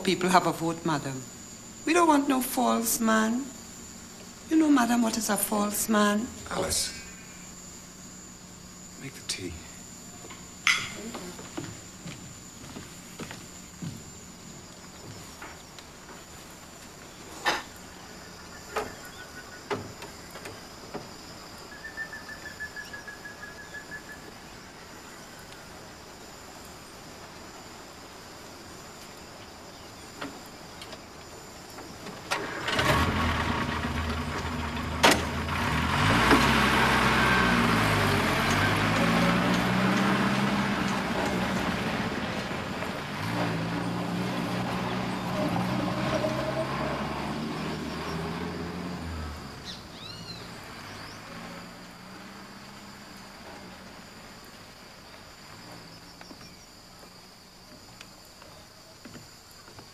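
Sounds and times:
engine revving: 32.4 - 54.0.

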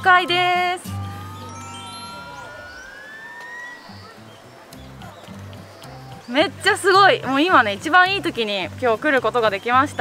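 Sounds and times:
electronic tone gliding upward: 0.8 - 5.0
lower tone sliding downward: 0.8 - 5.0.

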